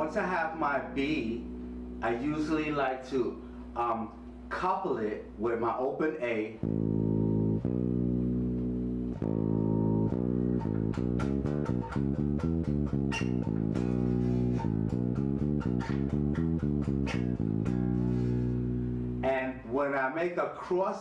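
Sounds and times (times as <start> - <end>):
electric bass playing notes: 0.0 - 20.6.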